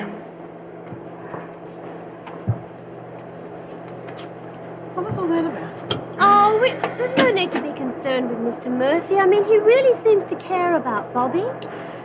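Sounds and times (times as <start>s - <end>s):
laundry machinery humming: 0.0s - 12.0s.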